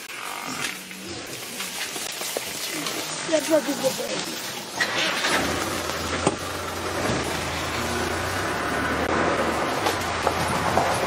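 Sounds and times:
rough noisy background: 0.0s - 11.0s
vehicle engine humming: 0.8s - 11.0s.

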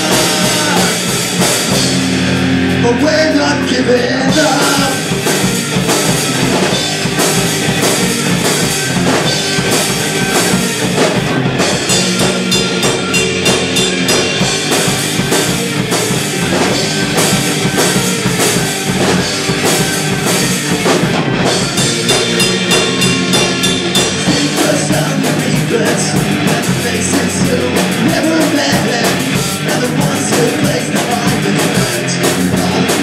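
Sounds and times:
drum kit beat: 0.0s - 3.4s, 4.2s - 33.0s
bass guitar: 0.0s - 33.0s
electric guitars: 0.0s - 33.0s.

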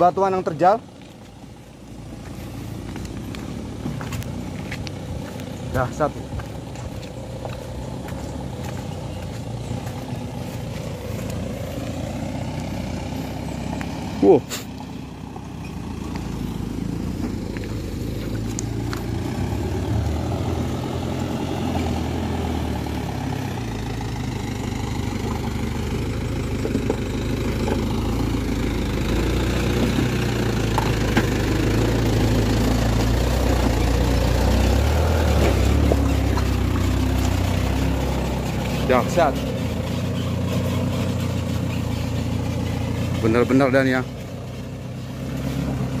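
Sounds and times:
diesel engine running: 0.0s - 46.0s.

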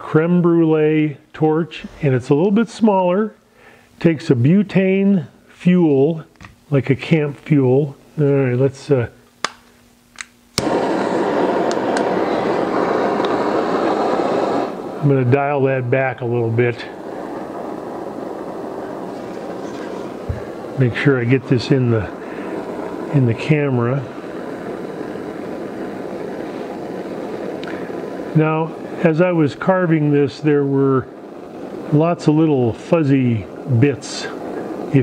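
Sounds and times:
torch flame hissing: 1.0s - 4.2s, 10.6s - 35.0s
torch igniter clicks: 9.3s - 14.9s, 17.0s - 28.5s.

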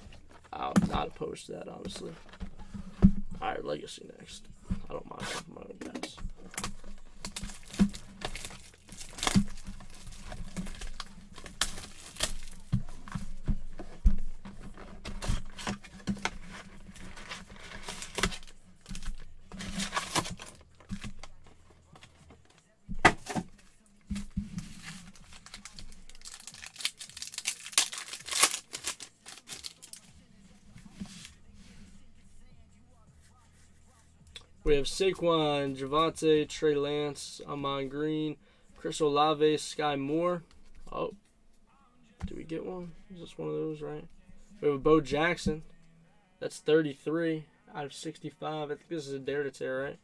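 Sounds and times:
foil packs crinkling and ripping: 6.5s - 12.7s, 17.0s - 21.3s, 24.8s - 30.0s
cardboard box tearing: 19.6s - 20.6s, 25.0s - 29.8s.

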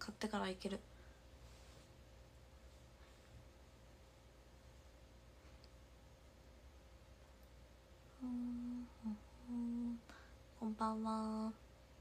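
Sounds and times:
woman humming: 8.1s - 11.6s.

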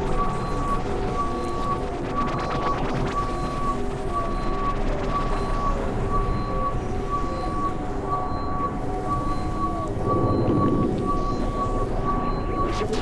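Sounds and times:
synthesizer drone: 0.0s - 13.0s
high beeping tone: 8.2s - 13.0s.

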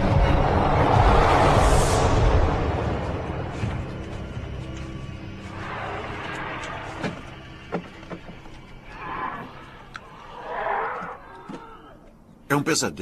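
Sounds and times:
low background score: 0.0s - 13.0s
rasping creature cries: 8.8s - 12.1s.

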